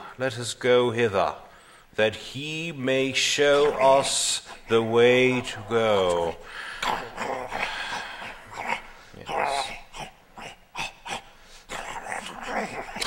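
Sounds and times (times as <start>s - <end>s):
person making dog-like growls: 3.5s - 13.0s.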